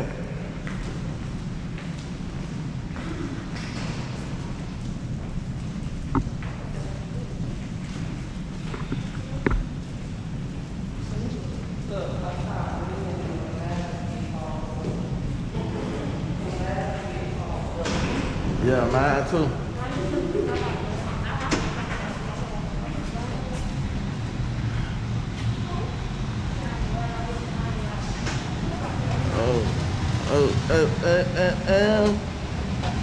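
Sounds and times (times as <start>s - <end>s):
steady low rumble: 0.0s - 33.0s
indistinct voices chattering: 6.7s - 33.0s
footsteps on tiled floor: 7.4s - 11.8s.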